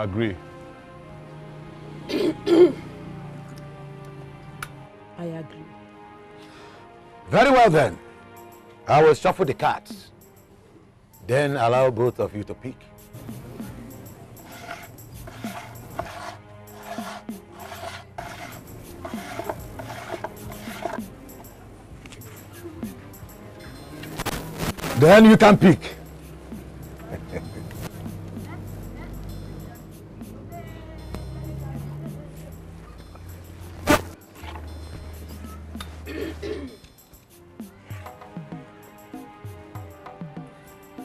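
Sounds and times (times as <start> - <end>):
background music: 0.0 - 41.0.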